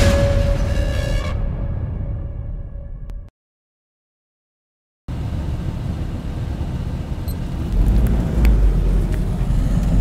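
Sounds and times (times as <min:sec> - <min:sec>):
vehicle engines rumbling: 0:05.1 - 0:10.0.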